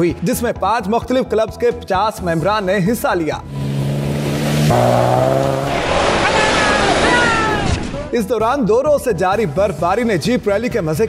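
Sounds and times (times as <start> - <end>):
engine running hard: 3.4 - 7.0
tyres rushing on snow: 3.5 - 7.9.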